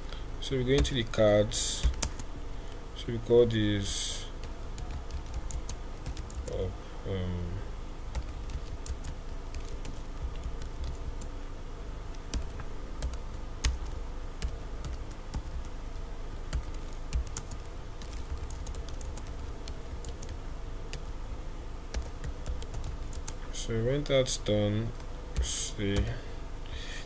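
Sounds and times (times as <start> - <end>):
faint steady hum: 0.0 - 27.0
typing on computer keyboard: 4.8 - 6.6, 16.5 - 20.4.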